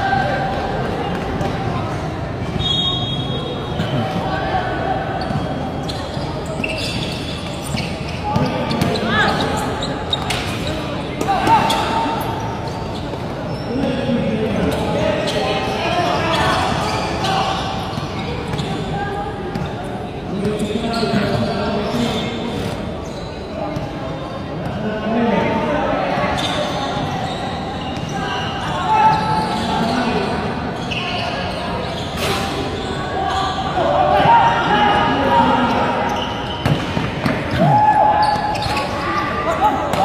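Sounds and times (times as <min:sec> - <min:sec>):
voices calling out and chattering: 0:00.0 - 0:40.0.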